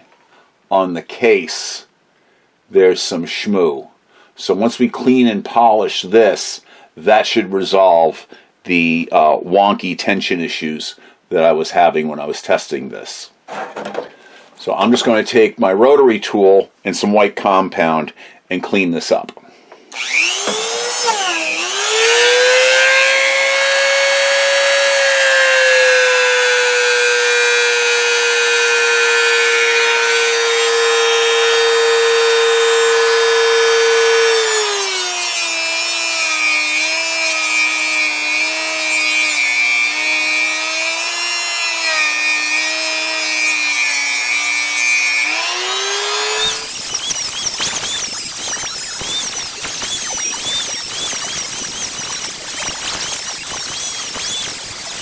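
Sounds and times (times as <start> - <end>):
rotary tool whining: 19.9 - 55.0
sped-up squealing chirps: 46.4 - 55.0.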